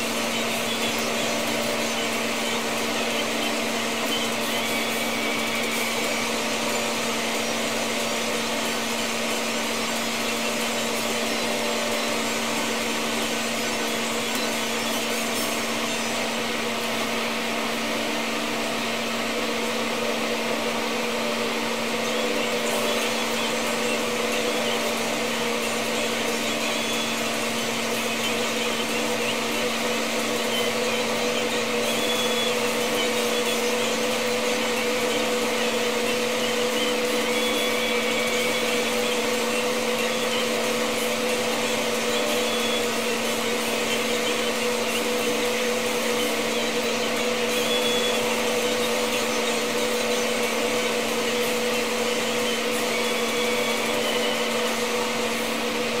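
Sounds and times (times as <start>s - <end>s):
small electric motor whirring: 0.0s - 56.0s.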